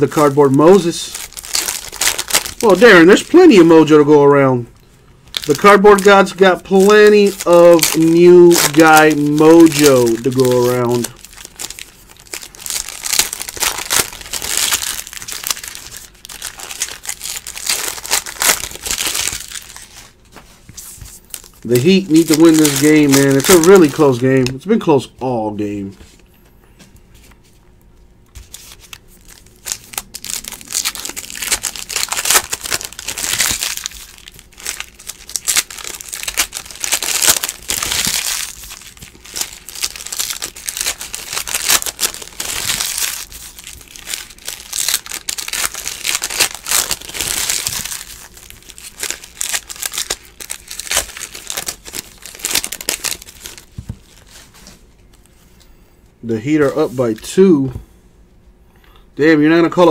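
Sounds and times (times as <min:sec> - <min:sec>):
foil wrappers torn and crinkled: 0:00.0 - 0:03.9, 0:05.3 - 0:20.2, 0:21.3 - 0:24.6, 0:28.4 - 0:55.2.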